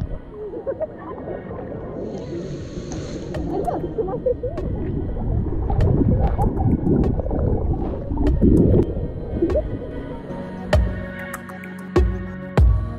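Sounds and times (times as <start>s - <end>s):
water gurgling and bubbling: 0.0s - 10.7s
music: 0.0s - 12.9s.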